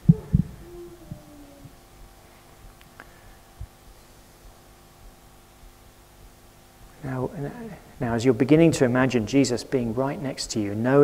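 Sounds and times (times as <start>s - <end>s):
dull low thumps: 0.0s - 2.2s
faint low hum: 0.0s - 11.0s.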